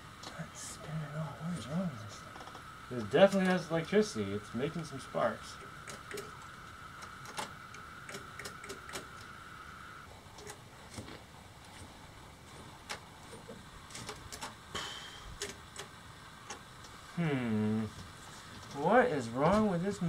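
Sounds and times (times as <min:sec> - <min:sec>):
electric sparks clicking and snapping: 0:12.8 - 0:14.7, 0:15.4 - 0:17.0.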